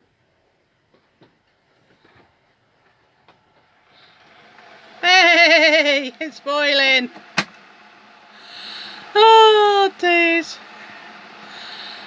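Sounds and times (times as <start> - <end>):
faint kettle hiss: 0.2 - 12.0.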